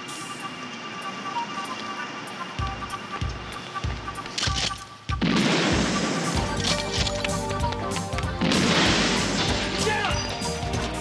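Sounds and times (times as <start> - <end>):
loud blast: 5.1 - 6.7, 8.4 - 10.3.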